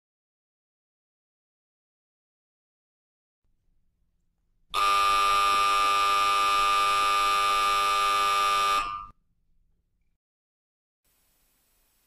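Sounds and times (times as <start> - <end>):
buzzer-like tone: 4.8 - 9.2.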